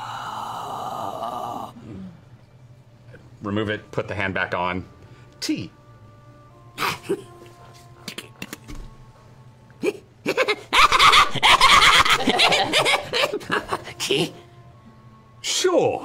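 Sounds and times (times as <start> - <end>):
group of people laughing: 10.3 - 14.4.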